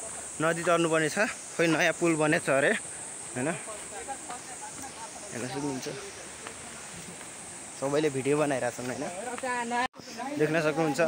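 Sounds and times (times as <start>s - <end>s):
background hiss: 0.0s - 11.0s
people talking: 0.0s - 11.0s.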